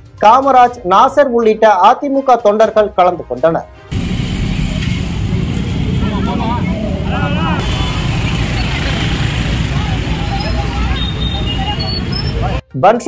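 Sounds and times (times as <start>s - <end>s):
motor scooters and traffic rumble: 3.9s - 12.6s
crowd talking: 5.7s - 12.6s.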